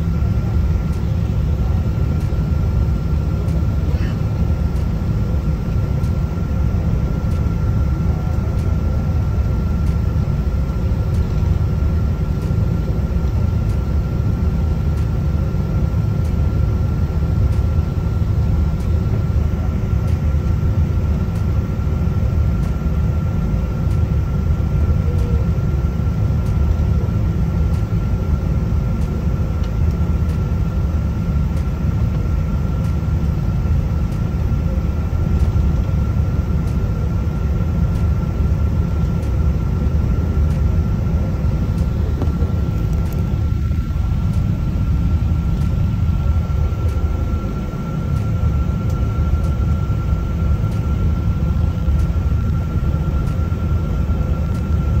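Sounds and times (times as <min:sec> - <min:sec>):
airliner cabin low rumble: 0:00.0 - 0:55.0
jet engine high-pitched whine: 0:00.0 - 0:55.0.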